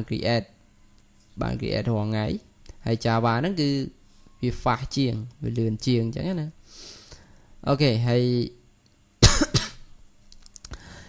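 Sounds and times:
man coughing: 9.2 - 9.9.

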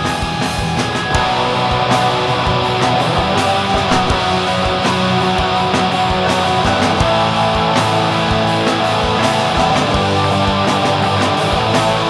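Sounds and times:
bass guitar: 0.0 - 12.0
distorted electric guitars strumming: 0.0 - 12.0
steady drum beat: 0.0 - 12.0.

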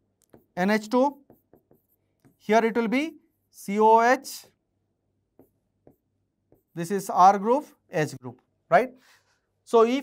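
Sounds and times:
pen tip tapping on screen: 0.2 - 2.4.

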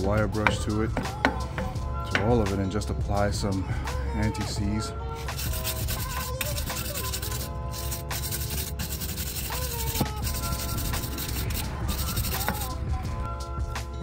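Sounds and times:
background music: 0.0 - 14.0
wire brush scrubbing metal: 5.2 - 12.8.

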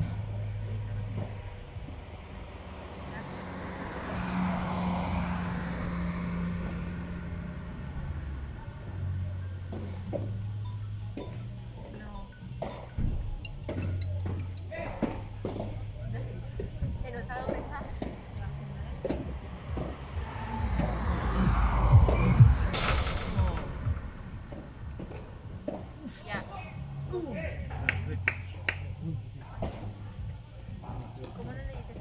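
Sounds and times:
harsh noise burst: 20.4 - 24.3.

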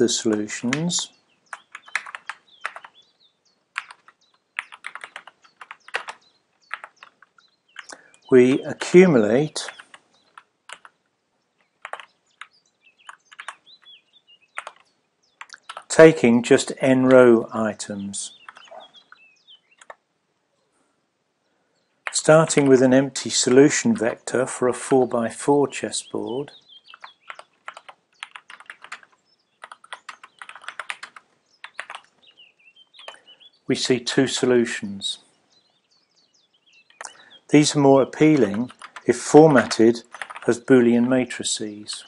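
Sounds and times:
computer keyboard typing: 1.5 - 3.0, 3.7 - 8.0, 9.6 - 11.0, 11.6 - 13.9, 14.5 - 15.9, 18.4 - 19.2, 19.8 - 20.0, 26.9 - 32.1, 33.0 - 33.2, 38.2 - 41.2.

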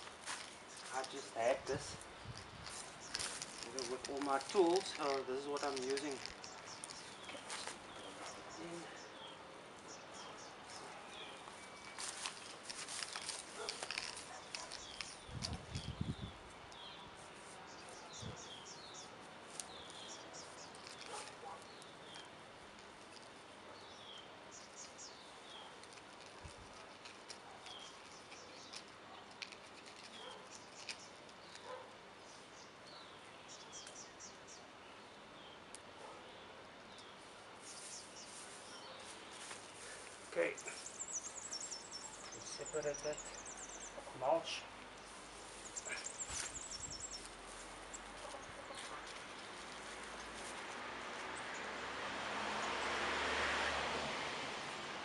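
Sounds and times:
rustling and clicks: 0.0 - 8.3, 11.4 - 16.0, 19.5 - 23.5, 24.8 - 32.0, 44.8 - 51.4
birds chirping: 0.0 - 53.6.

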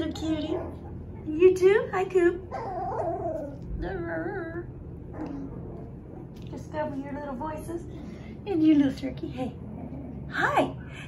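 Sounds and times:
puppy whining: 2.4 - 4.3, 5.0 - 6.4.

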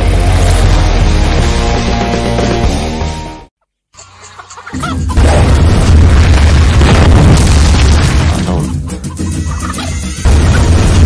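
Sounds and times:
cinematic trailer music: 0.0 - 3.5, 5.2 - 11.0
booming impact hits: 5.2 - 8.5.

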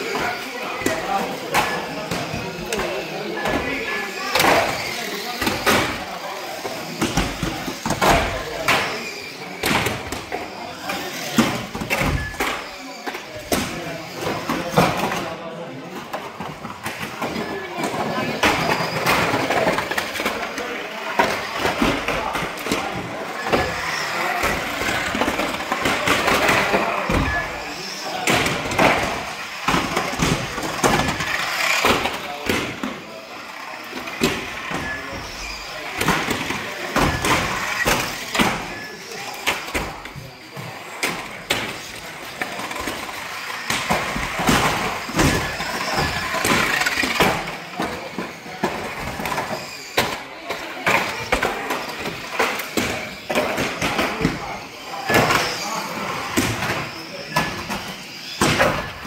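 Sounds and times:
toy cars knocking: 0.0 - 59.0
whirr of small motors and tyres: 0.0 - 59.0.

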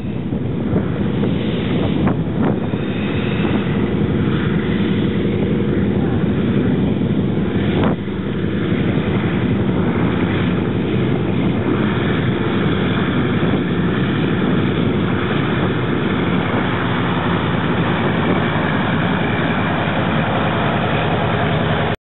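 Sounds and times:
radial engine and propeller running: 0.0 - 22.0.

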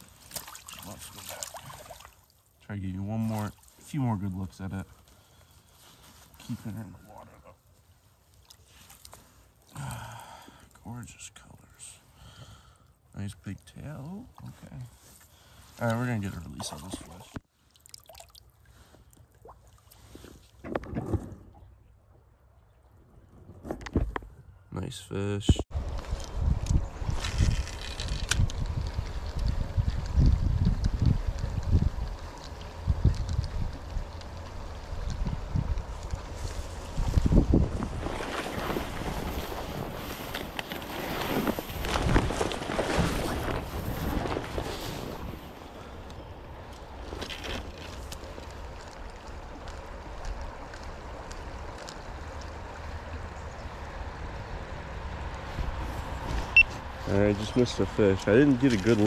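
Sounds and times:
rustling and scraping through brush: 0.0 - 2.4, 3.0 - 9.7, 14.0 - 17.4, 19.8 - 21.5, 25.8 - 52.7, 55.4 - 59.0
wind buffeting microphone: 25.7 - 46.6.

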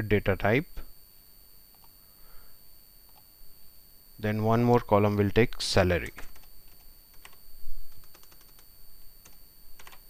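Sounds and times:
keyboard keys clicking: 6.0 - 7.4, 8.0 - 8.6, 9.2 - 10.0.

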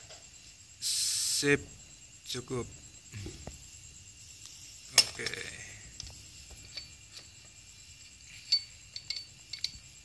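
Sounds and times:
metal engine parts clinking: 4.9 - 10.0.

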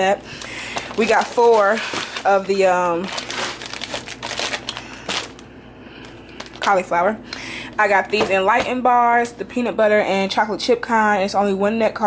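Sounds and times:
plastic bags crinkling: 0.2 - 6.9.

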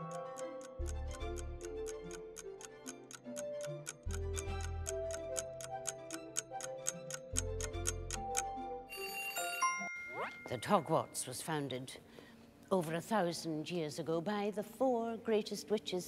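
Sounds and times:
timer ticking: 0.0 - 8.6
background music held notes: 0.0 - 10.5.

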